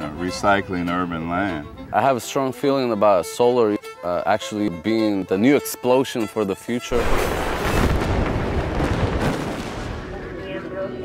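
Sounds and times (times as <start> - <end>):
loud explosion boom: 7.0 - 10.2.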